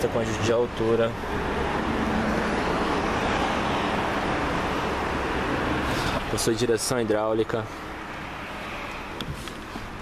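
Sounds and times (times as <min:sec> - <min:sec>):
steady road traffic: 0:00.0 - 0:10.0.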